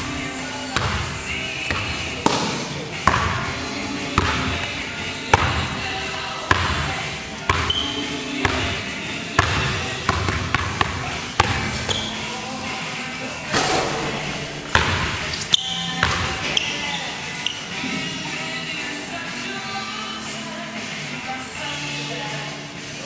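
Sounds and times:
basketball bouncing on hardwood: 0:01.7 - 0:03.5, 0:05.3 - 0:05.7, 0:09.4 - 0:12.0.

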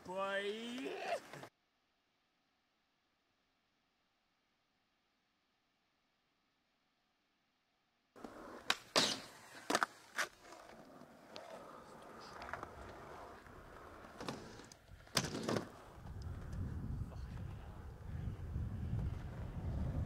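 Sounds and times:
skateboard wheels rolling on concrete: 0:00.0 - 0:01.5, 0:08.2 - 0:20.0.

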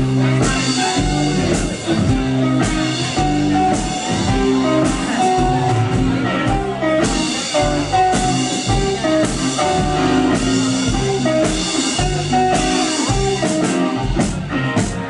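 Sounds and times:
drum kit: 0:00.0 - 0:15.0
electric guitar notes: 0:00.0 - 0:15.0.

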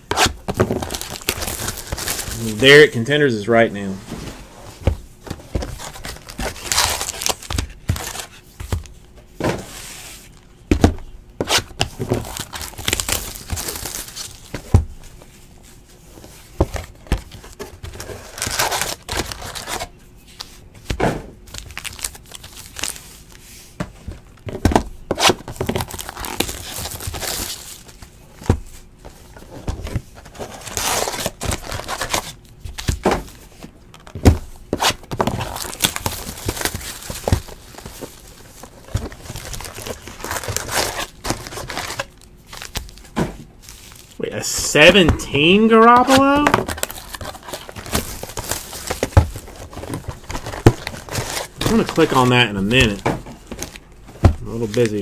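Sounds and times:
plastic wrap crinkling and tearing: 0:00.2 - 0:03.0, 0:05.6 - 0:08.4, 0:11.5 - 0:14.5, 0:17.4 - 0:19.9, 0:21.5 - 0:23.4, 0:25.2 - 0:28.0, 0:30.2 - 0:32.4, 0:34.8 - 0:44.2, 0:45.3 - 0:53.8, 0:54.4 - 0:55.0.

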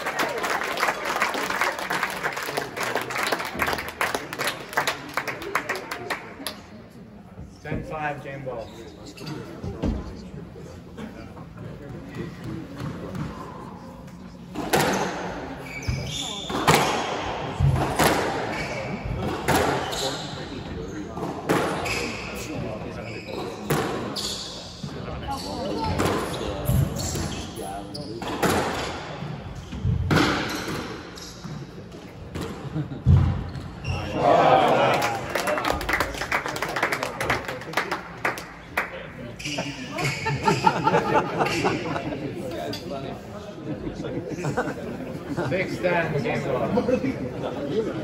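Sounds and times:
squash ball hitting rackets and walls: 0:14.6 - 0:18.6, 0:28.2 - 0:31.6
sneakers squeaking on hardwood floor: 0:15.6 - 0:16.9, 0:21.6 - 0:28.6, 0:29.2 - 0:31.8, 0:33.4 - 0:34.2.

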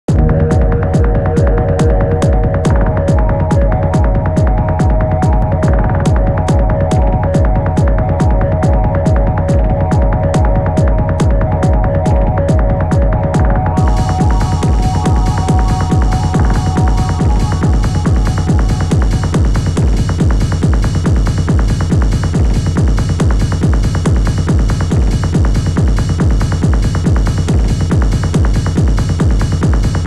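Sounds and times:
electronic dance music: 0:00.1 - 0:30.0.

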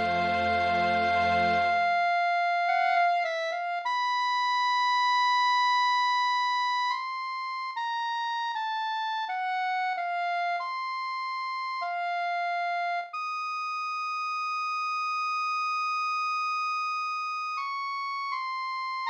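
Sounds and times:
synthesized clarinet solo: 0:00.0 - 0:19.0.

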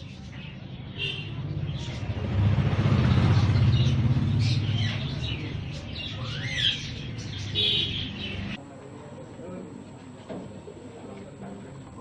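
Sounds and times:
small birds chirping: 0:00.0 - 0:08.6
vehicle engine rumbling past: 0:01.3 - 0:08.6.

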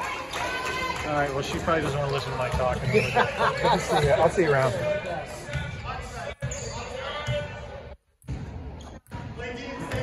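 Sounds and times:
voices in gym: 0:00.0 - 0:10.0.

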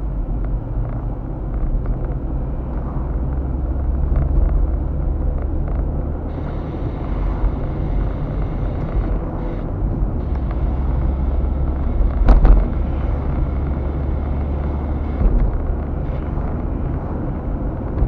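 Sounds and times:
car engine and tyre drone: 0:00.0 - 0:18.0.

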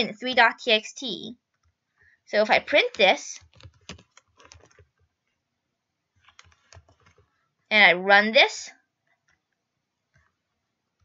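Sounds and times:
computer keyboard key taps: 0:02.8 - 0:04.9.

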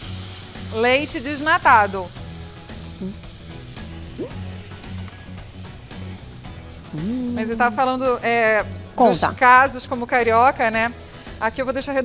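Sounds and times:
filling sizzling in a frying pan: 0:00.0 - 0:11.8.

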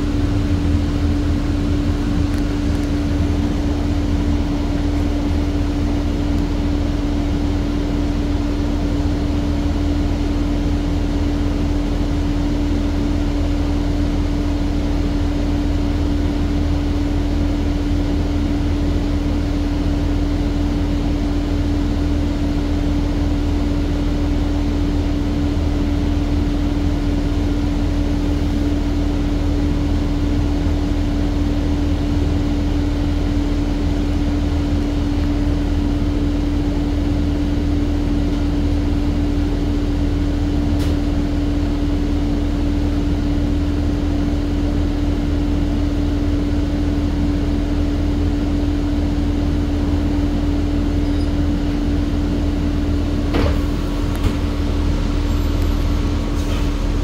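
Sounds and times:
bus engine droning: 0:00.0 - 0:57.0.

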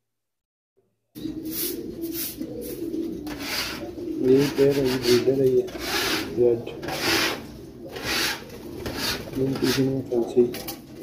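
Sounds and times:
pigeons cooing: 0:01.2 - 0:11.0
scratchy rustling: 0:03.2 - 0:10.0.

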